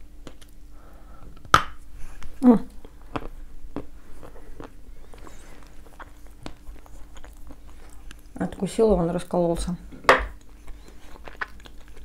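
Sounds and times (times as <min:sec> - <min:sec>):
crunchy chewing of clay: 0:02.0 - 0:09.6, 0:10.3 - 0:12.0.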